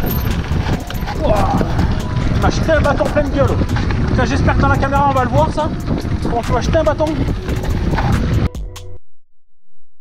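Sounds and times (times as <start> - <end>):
bike frame rattling: 0.0 - 8.5
bike tyres rumbling over gravel: 0.0 - 8.5
wind buffeting microphone: 0.0 - 8.5.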